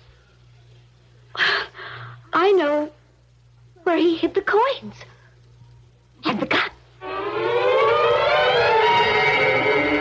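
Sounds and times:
siren-like rising tone: 7.0 - 10.0.

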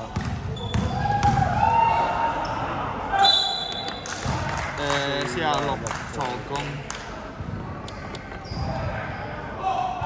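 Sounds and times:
sneakers squeaking on court floor: 0.2 - 1.4, 8.3 - 8.9.

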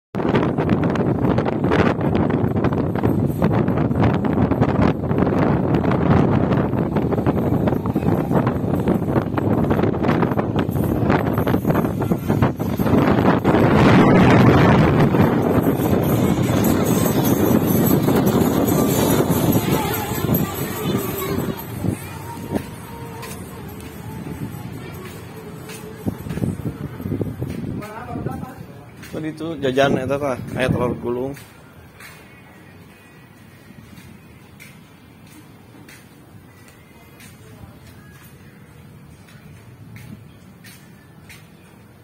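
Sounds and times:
wind buffeting microphone: 0.2 - 31.5.

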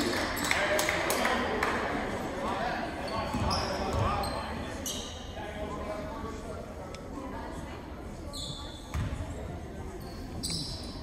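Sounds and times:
indistinct crowd chatter: 0.0 - 11.0
sneaker squeaks: 3.0 - 5.3, 8.2 - 9.3, 9.9 - 11.0.

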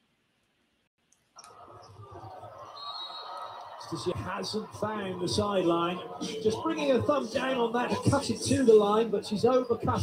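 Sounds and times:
volleyball match broadcast noise: 1.4 - 10.0
man commentating: 3.7 - 10.0.

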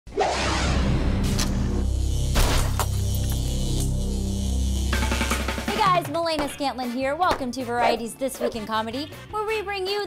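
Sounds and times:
intro music with bass tones: 0.4 - 6.0.

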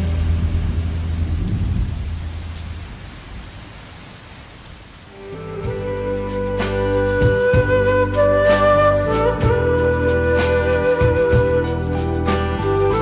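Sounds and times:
music: 0.0 - 1.6, 5.1 - 13.0
low rumble: 0.0 - 3.5
rain-like hiss: 0.0 - 13.0.

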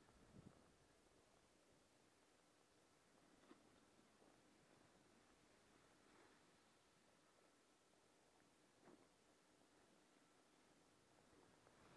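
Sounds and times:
faint steady hiss: 0.0 - 11.9.

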